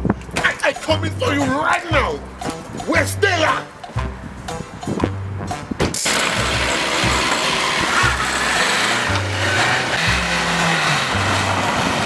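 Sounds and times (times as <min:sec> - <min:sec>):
music with repeating bass line: 0:00.0 - 0:12.0
car engine and tyres in mud: 0:06.0 - 0:12.0.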